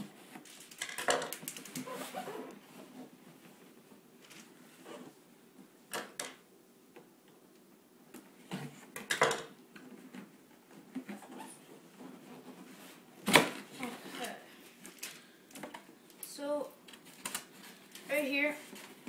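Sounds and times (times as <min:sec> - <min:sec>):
cardboard rustling and scraping: 0:01.7 - 0:03.2.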